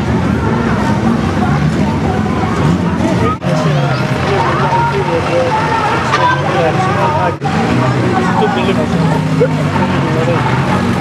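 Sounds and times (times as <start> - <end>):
crowd chatter: 0.0 - 11.0
engines humming: 0.0 - 11.0.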